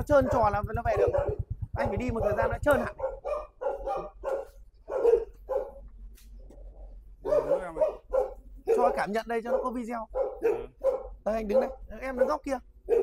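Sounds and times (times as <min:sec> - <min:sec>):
dog barking: 0:00.0 - 0:05.9, 0:07.2 - 0:13.0.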